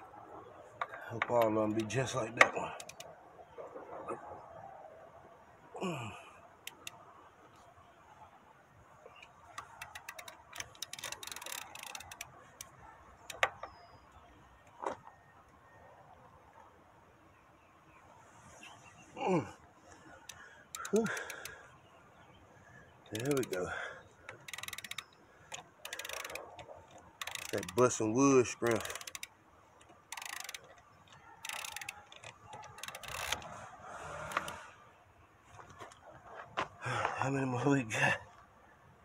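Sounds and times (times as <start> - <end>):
wrench metallic clicks and taps: 0.8 - 3.1, 6.7 - 7.0, 9.2 - 13.8, 20.2 - 21.5, 23.0 - 23.7, 24.3 - 27.9, 28.6 - 33.5, 34.3 - 34.6
person grunting with effort: 5.8 - 6.4, 19.2 - 19.6.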